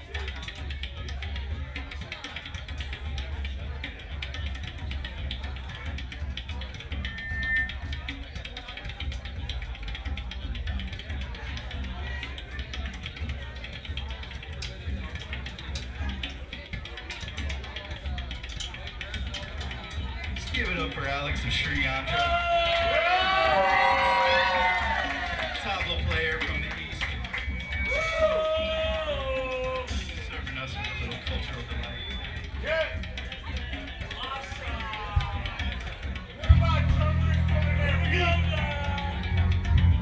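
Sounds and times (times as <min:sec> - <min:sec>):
funk rock band playing: 0:36.1 - 0:40.0
heavy bass line: 0:36.4 - 0:40.0.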